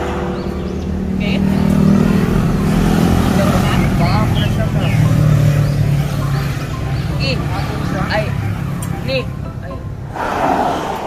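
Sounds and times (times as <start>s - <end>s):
vehicle engine running: 0.0s - 10.2s.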